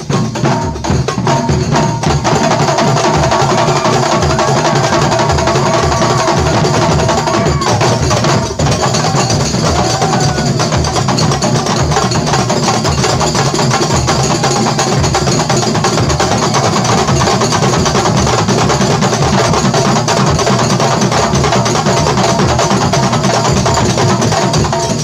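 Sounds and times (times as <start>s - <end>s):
frame drums and hand drums playing: 0.0s - 25.0s.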